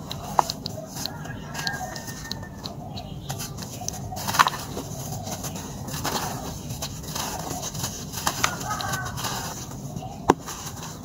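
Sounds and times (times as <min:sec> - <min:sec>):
hands crumbling damp dirt: 0:00.0 - 0:11.0
chicken clucking: 0:00.1 - 0:10.3.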